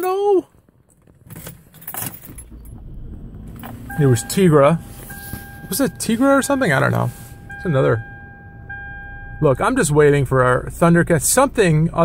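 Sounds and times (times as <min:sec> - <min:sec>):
car keys jangling: 0:00.0 - 0:07.6
low car rumble: 0:00.9 - 0:12.0.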